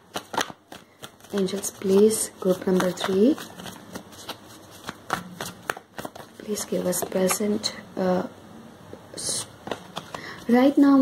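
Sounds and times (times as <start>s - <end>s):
cards being shuffled: 0.0s - 7.6s, 9.2s - 11.0s.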